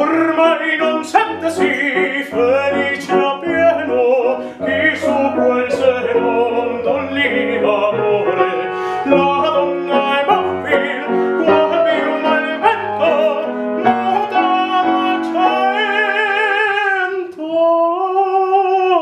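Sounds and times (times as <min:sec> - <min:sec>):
grand piano accompaniment: 0:00.0 - 0:19.0
man singing opera: 0:00.0 - 0:19.0.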